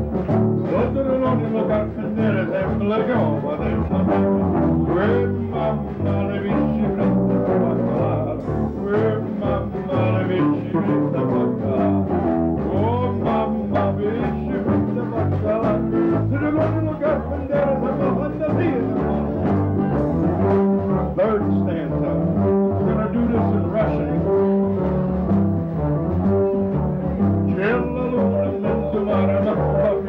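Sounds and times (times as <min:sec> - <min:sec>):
electric bass notes: 0:00.0 - 0:30.0.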